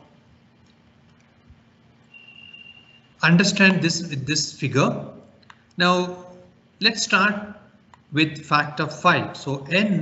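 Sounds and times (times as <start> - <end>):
faint high-pitched tone: 2.1 - 3.2.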